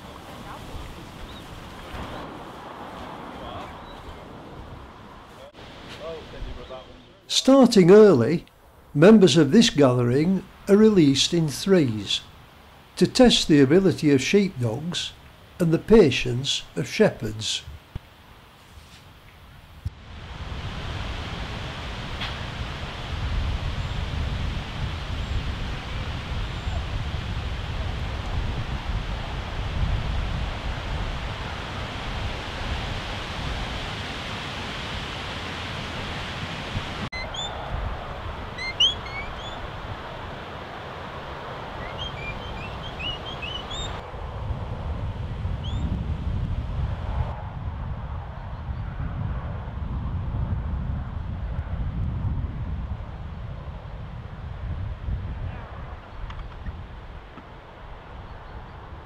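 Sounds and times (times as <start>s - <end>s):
wind rumbling on microphone: 0.0s - 6.8s, 19.4s - 59.0s
high bird chirps: 37.1s - 37.7s, 38.6s - 39.7s, 41.8s - 44.0s.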